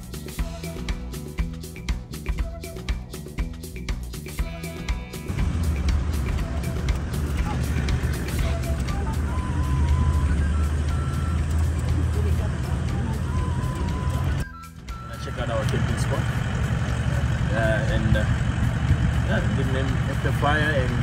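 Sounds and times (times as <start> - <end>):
background music: 0.0 - 21.0
vehicle rumbling on gravel road: 5.3 - 14.4, 15.0 - 21.0.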